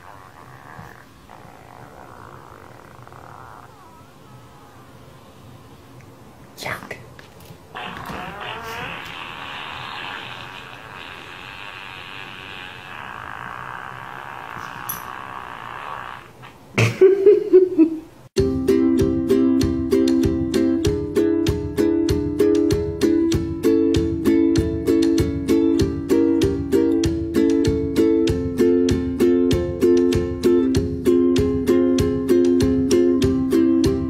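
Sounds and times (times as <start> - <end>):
wavering electronic sound: 0.0 - 5.8
electronic sound from tablet: 7.8 - 16.0.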